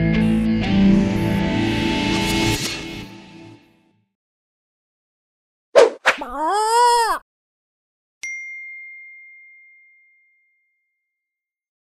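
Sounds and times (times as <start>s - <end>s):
bell-like ding: 8.2s - 11.0s.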